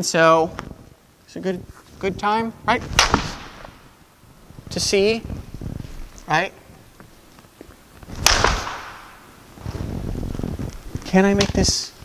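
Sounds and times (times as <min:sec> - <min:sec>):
wooden swords clacking: 0:02.8 - 0:03.8, 0:08.0 - 0:09.3.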